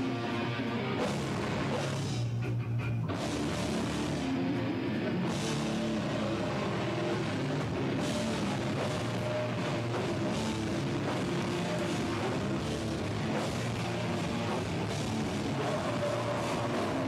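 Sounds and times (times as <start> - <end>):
rock band playing live: 0.0 - 17.0.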